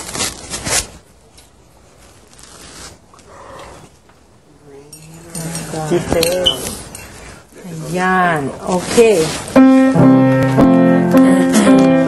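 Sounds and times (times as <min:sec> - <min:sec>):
clothing fabric rustling: 0:01.8 - 0:03.1, 0:07.8 - 0:09.6
light scratches: 0:08.7 - 0:09.6.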